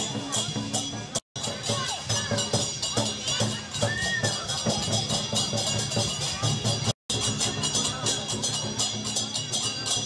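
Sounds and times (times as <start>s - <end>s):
crowd voices: 0.0s - 10.0s
cymbals clashing: 0.0s - 10.0s
drum beating: 0.0s - 10.0s.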